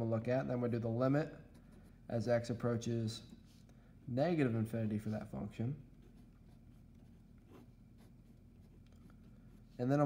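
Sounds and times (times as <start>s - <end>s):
low room hum: 0.0s - 10.0s
marker scratching on paper: 6.0s - 9.8s.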